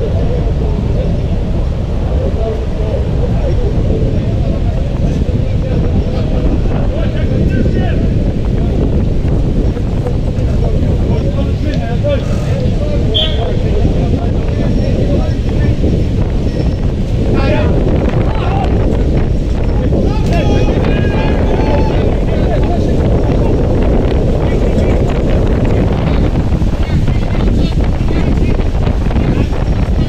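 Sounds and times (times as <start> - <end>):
wind buffeting microphone: 0.0 - 30.0
people shouting: 19.9 - 22.8.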